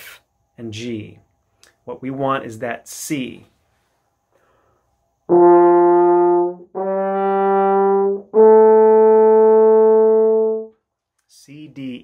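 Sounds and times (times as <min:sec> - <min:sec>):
french horn held notes: 0:05.3 - 0:10.8.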